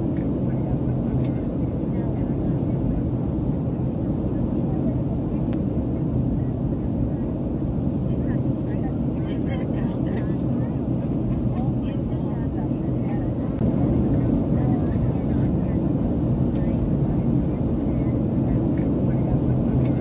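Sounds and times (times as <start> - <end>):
airliner cabin roar: 0.0 - 20.0.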